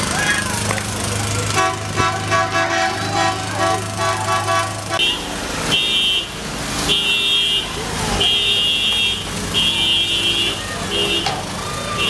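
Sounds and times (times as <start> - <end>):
vehicle engine humming: 0.0 - 12.0
voices: 0.0 - 12.0
vehicle horn tooting: 1.5 - 12.0.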